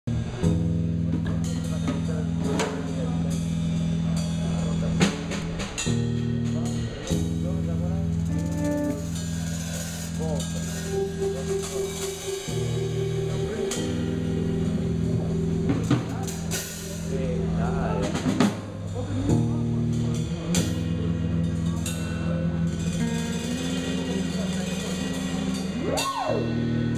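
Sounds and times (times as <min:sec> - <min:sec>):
band playing low chords: 0:00.0 - 0:26.9
drum kit hits: 0:00.3 - 0:21.0.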